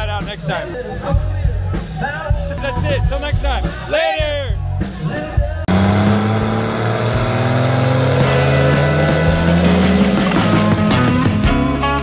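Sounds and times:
diesel engine revving high: 5.7s - 11.6s.

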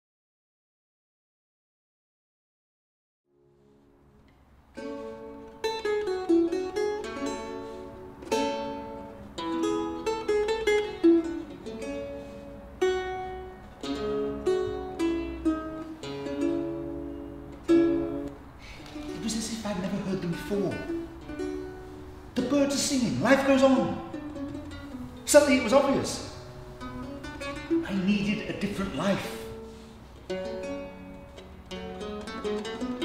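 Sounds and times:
plucked string instrument: 3.4s - 33.0s.

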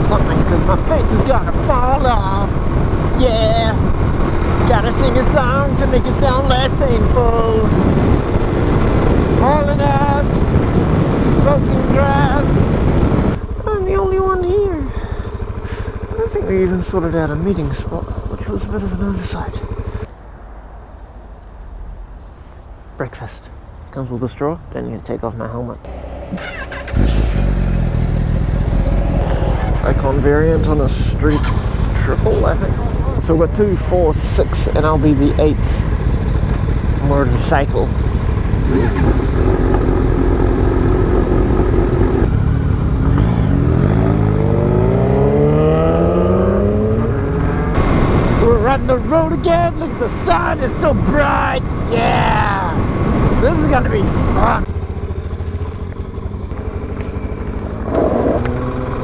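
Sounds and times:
motorcycle engine idling: 13.4s - 20.1s, 25.9s - 44.0s, 54.4s - 59.0s.

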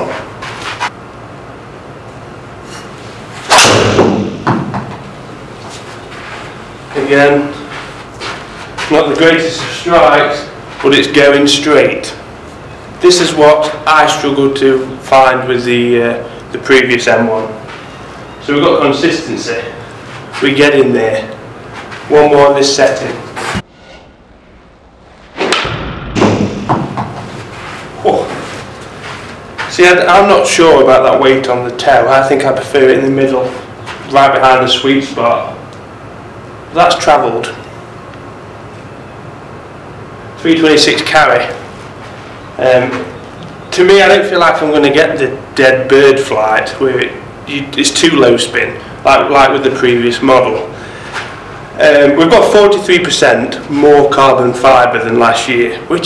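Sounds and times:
ball thudding on screen: 3.5s - 5.0s, 25.4s - 27.3s.

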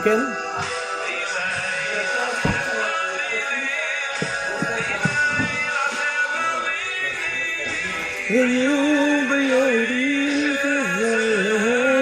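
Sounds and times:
instrumental backing music: 0.0s - 12.0s
solo singer: 1.0s - 12.0s.

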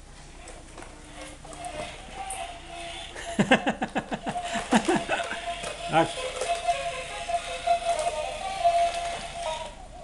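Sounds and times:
person laughing: 3.2s - 5.5s.

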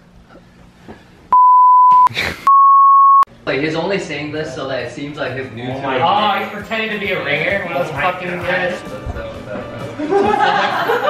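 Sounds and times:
censor bleeps: 1.4s - 3.3s.

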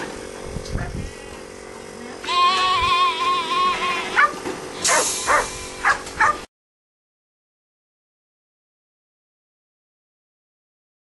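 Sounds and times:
dog yipping: 4.1s - 6.5s.

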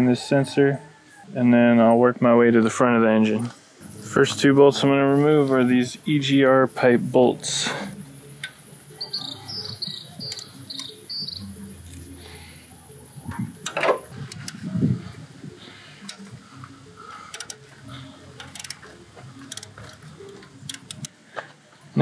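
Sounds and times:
high chirps: 3.8s - 14.4s
ratcheting wrench clicks: 17.3s - 17.6s, 18.4s - 18.8s, 19.4s - 21.1s.

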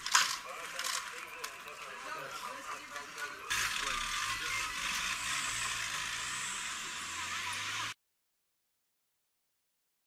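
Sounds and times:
faint voices: 0.0s - 8.0s
outdoor noise: 0.0s - 8.0s.

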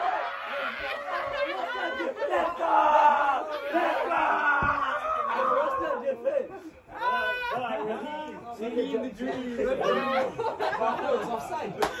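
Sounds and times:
young men yelling and cheering: 0.0s - 11.7s.

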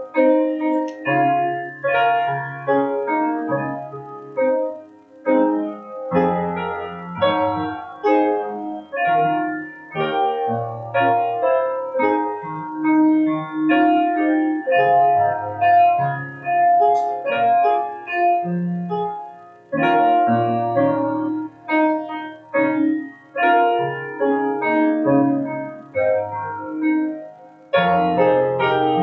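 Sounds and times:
grand piano playing hymn chords: 0.0s - 29.0s.

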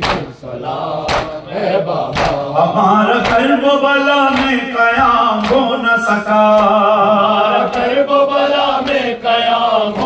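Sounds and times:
man chanting a lament: 0.0s - 8.3s.

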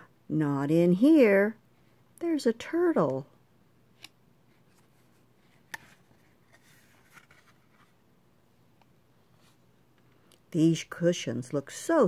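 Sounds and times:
cardboard page turning rustle: 4.7s - 8.0s.

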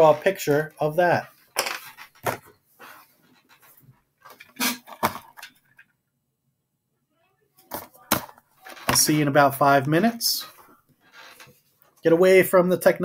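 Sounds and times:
objects handled on a desk: 1.3s - 5.9s, 7.6s - 9.1s, 10.6s - 12.0s.

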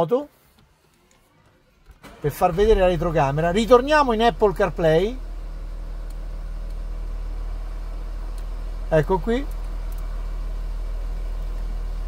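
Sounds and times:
car engine idling: 0.4s - 12.0s.

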